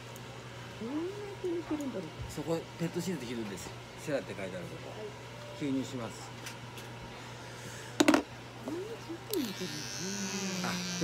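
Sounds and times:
electric clipper buzzing: 9.3s - 11.0s.

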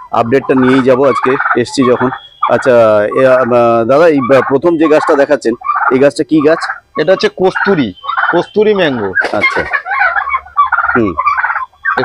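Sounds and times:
men talking: 0.1s - 9.8s, 10.9s - 11.2s.

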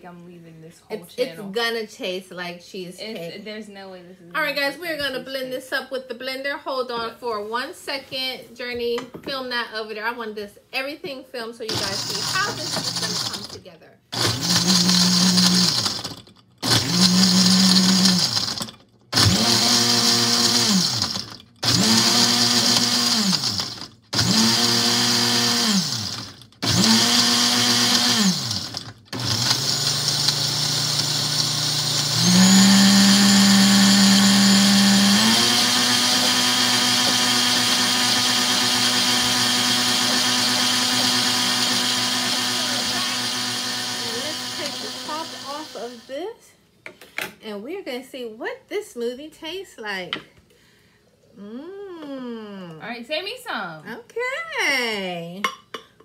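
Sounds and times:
countertop blender whirring: 11.7s - 46.2s.

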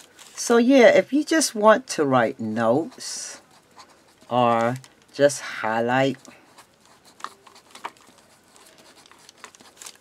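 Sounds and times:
marker pen scratching on paper: 2.4s - 10.0s
pen nib ticks: 8.5s - 9.7s.

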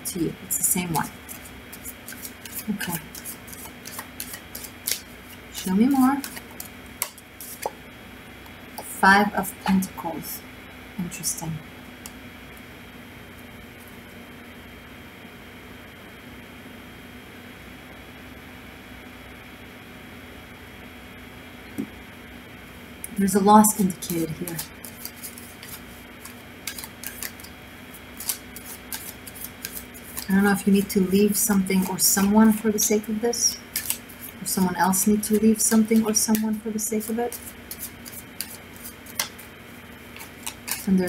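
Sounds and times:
cards clicking: 1.3s - 7.8s, 24.3s - 27.6s, 28.2s - 32.3s, 33.7s - 34.4s, 35.2s - 39.5s, 40.1s - 41.0s.

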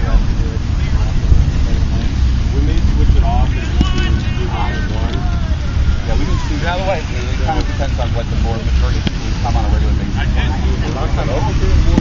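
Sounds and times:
voices calling out: 0.0s - 12.0s
wind rumbling on microphone: 0.0s - 12.0s.

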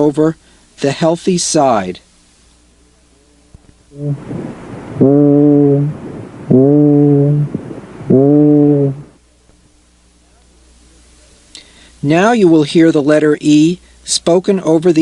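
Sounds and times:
muffled voice hums through stethoscope: 3.2s - 9.2s.

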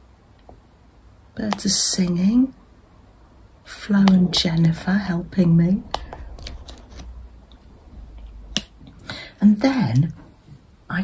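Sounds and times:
faint low rumble: 1.4s - 11.0s.

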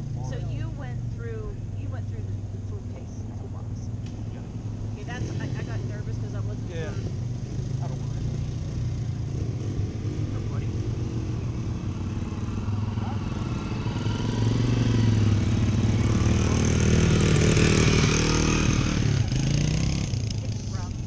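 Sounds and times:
dirt bike engine at low revs: 0.0s - 21.0s.

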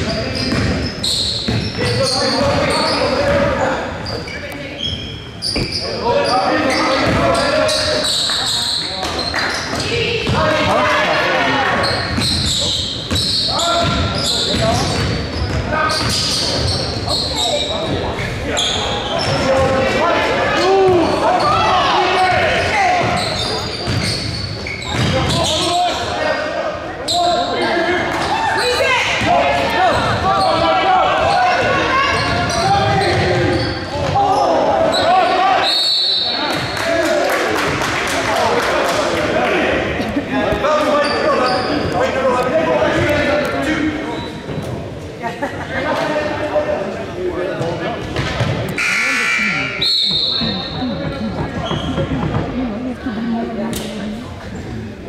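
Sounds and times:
basketball bouncing on court: 0.0s - 3.5s, 12.1s - 16.8s, 23.8s - 25.4s, 50.6s - 52.6s
shoe squeaks: 0.0s - 10.1s, 11.8s - 19.5s, 21.1s - 25.9s, 31.3s - 36.4s, 40.8s - 42.0s, 44.0s - 44.5s, 48.7s - 52.4s
people shouting and talking: 0.0s - 55.0s.

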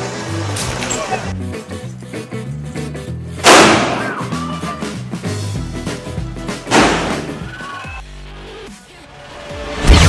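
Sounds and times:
background music: 0.0s - 10.0s
firecracker bang: 3.4s - 4.1s, 6.7s - 7.4s.

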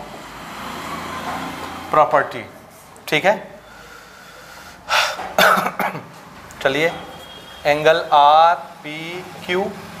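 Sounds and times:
man coughing: 5.0s - 6.1s.

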